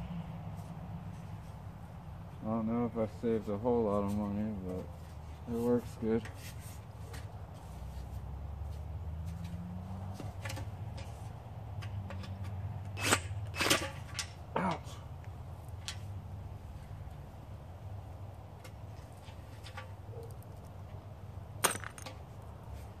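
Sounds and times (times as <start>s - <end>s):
metallic clinks of aluminum scrap: 12.1s - 14.4s.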